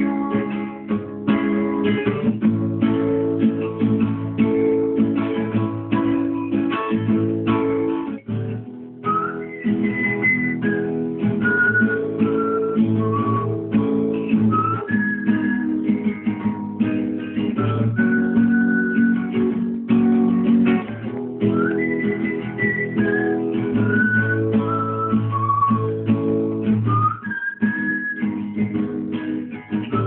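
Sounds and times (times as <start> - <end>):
whistled melody: 0.0 - 2.0, 9.0 - 19.7, 21.4 - 29.2, 29.8 - 30.0
acoustic guitar chords: 0.0 - 30.0.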